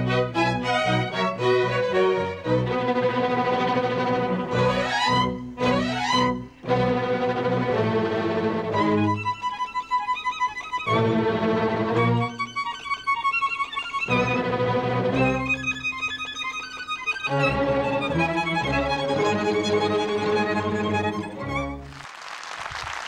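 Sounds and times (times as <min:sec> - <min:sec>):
solo violin melody: 0:00.0 - 0:21.9
sustained low accompanying notes: 0:00.0 - 0:21.9.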